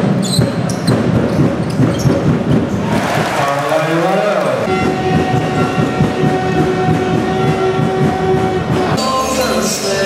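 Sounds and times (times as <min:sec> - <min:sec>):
arena game horn blast: 0:04.7 - 0:09.0
low rhythmic rumble: 0:04.7 - 0:09.0.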